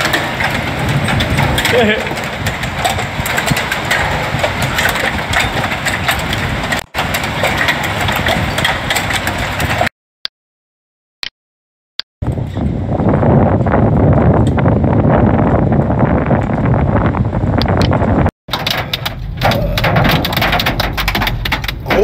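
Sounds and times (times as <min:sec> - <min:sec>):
hail and heavy rain: 0:00.0 - 0:09.9, 0:18.5 - 0:22.0
wind: 0:00.0 - 0:09.9, 0:12.2 - 0:22.0.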